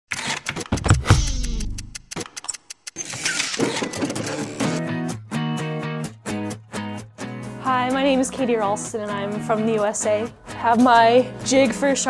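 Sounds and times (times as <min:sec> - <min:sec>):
intro music: 0:00.6 - 0:03.0
sharp hits: 0:00.6 - 0:04.2.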